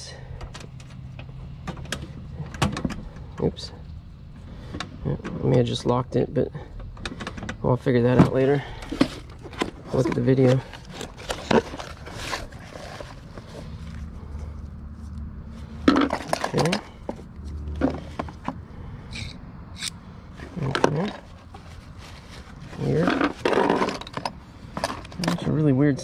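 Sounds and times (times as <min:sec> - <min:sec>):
toys rummaged in cardboard box: 0:08.0 - 0:14.3, 0:15.6 - 0:18.6, 0:20.4 - 0:25.5.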